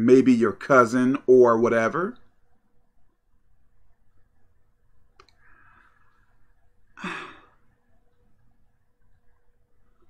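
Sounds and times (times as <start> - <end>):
soft in-breath: 5.3 - 6.4
man sighing: 7.0 - 7.6.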